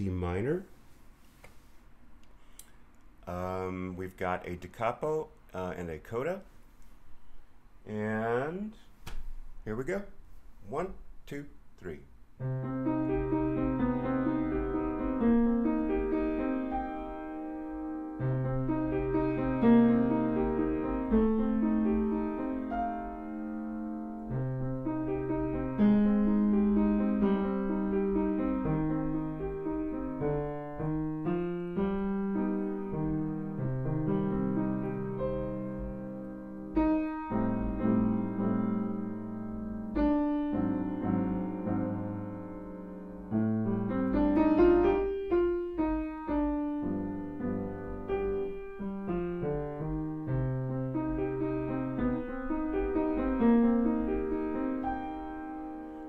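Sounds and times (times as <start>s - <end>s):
solo grand piano piece: 12.2s - 56.0s.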